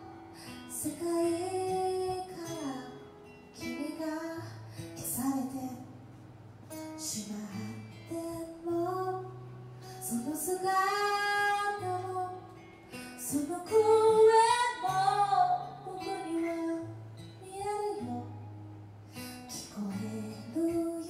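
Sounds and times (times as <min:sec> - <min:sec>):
woman singing a slow ballad: 0:00.0 - 0:06.1, 0:06.7 - 0:18.6, 0:19.2 - 0:21.0
acoustic guitar: 0:00.0 - 0:21.0.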